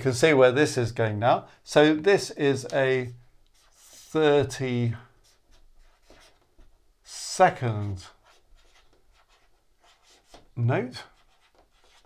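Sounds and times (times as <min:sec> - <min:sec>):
marker scratching on whiteboard: 0:03.5 - 0:04.4, 0:05.1 - 0:12.0.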